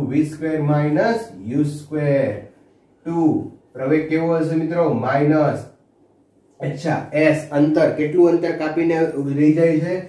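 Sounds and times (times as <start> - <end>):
man speaking: 0.0 - 5.8, 6.6 - 10.0.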